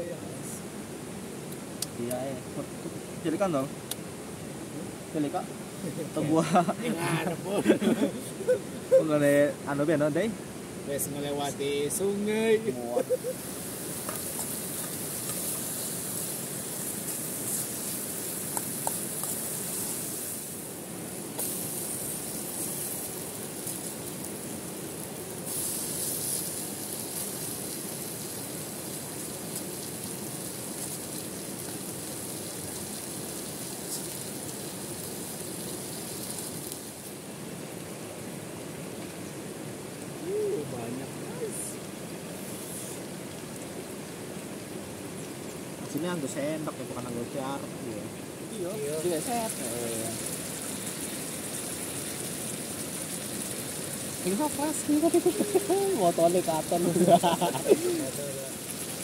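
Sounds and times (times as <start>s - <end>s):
rain hissing: 0.0s - 59.0s
river water running: 0.0s - 59.0s
onions sizzling in a frying pan: 4.5s - 38.2s, 48.4s - 59.0s.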